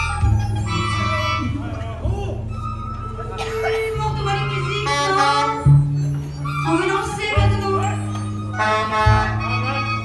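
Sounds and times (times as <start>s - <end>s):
higher wavering melodic line: 0.0s - 10.0s
long held low bass notes: 0.0s - 10.0s.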